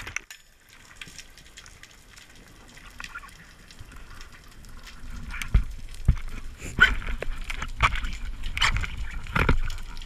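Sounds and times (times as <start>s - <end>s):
underwater crackling clicks: 0.0s - 10.0s
low underwater thumps: 5.4s - 6.4s.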